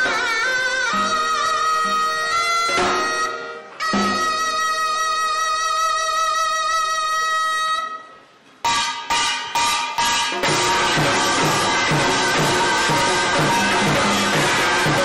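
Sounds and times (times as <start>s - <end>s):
drums and metal gongs: 0.0s - 4.9s, 8.6s - 15.0s
double-reed horn melody: 10.4s - 15.0s.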